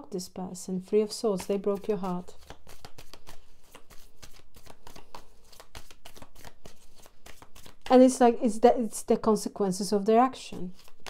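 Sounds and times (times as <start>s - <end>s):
cards being shuffled: 0.8s - 8.2s, 10.6s - 11.0s.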